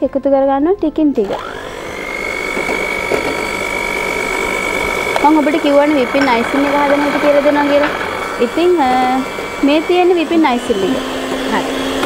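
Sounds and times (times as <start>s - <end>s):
electric hand mixer whining: 0.9s - 12.0s.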